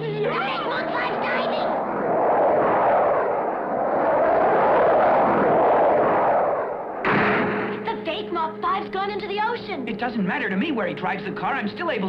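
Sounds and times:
voices: 0.0s - 1.9s
jet rushing roar: 0.0s - 8.4s.

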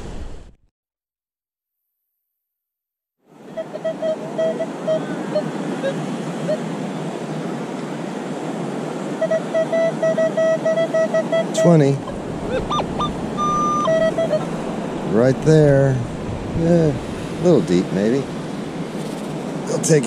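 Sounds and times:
wind: 3.2s - 20.0s
metal detector beeps: 3.6s - 6.6s, 9.2s - 14.5s.

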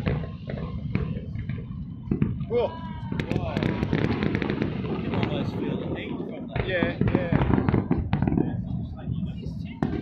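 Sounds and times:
fireworks bursting: 0.0s - 10.0s.

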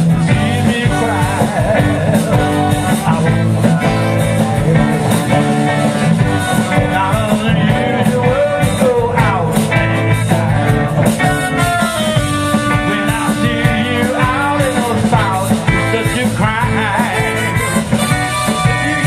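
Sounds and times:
bass: 0.0s - 19.0s
drums: 0.0s - 19.0s
electric guitars: 0.0s - 19.0s.

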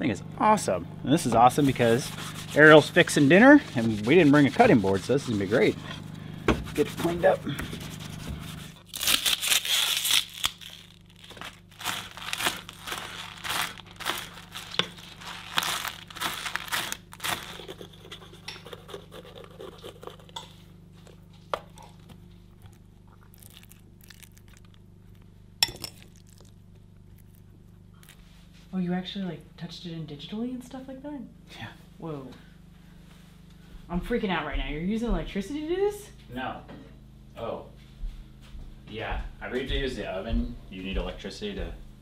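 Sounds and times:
rubbing crinkling and tearing: 1.6s - 6.0s, 6.7s - 18.4s, 22.7s - 25.2s.

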